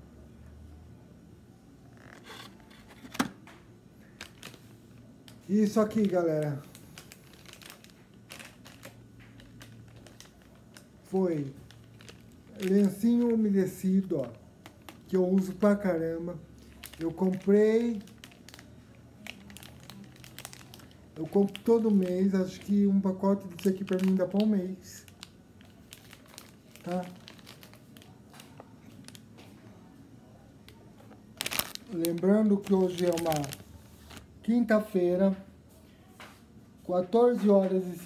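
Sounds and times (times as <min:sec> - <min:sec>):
plastic blister pack rustling: 0:01.9 - 0:03.4, 0:04.0 - 0:29.5, 0:30.7 - 0:34.4.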